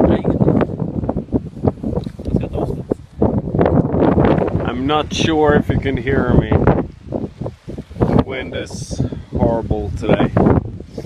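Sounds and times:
wind buffeting microphone: 0.0s - 11.0s
man's voice: 4.6s - 6.7s, 8.1s - 10.5s.

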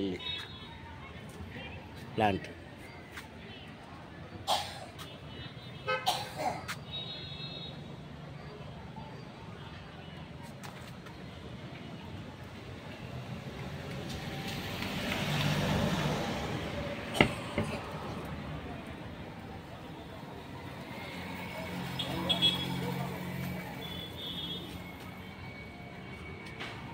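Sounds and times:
road traffic: 0.0s - 26.9s
vehicle passing: 13.5s - 18.8s, 20.4s - 23.8s.

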